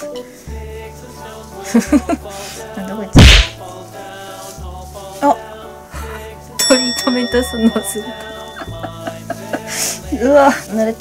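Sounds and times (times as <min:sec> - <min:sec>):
light background music: 0:00.0 - 0:11.0
whip crack: 0:03.2 - 0:03.6.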